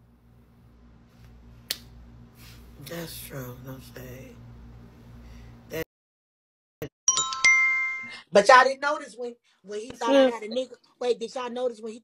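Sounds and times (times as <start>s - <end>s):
low steady hum: 0.0s - 5.8s.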